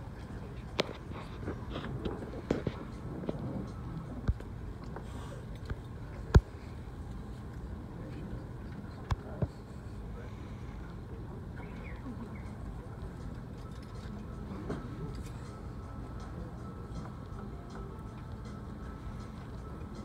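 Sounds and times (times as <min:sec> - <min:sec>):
background chatter: 0:00.0 - 0:20.0
low hum: 0:00.0 - 0:20.0.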